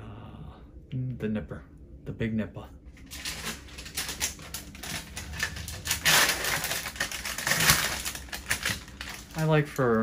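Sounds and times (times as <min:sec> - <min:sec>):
crinkly rustles: 0:03.0 - 0:10.0.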